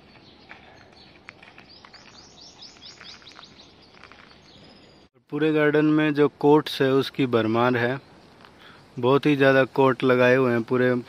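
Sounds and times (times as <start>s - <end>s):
small bird chirping: 0.2s - 5.1s.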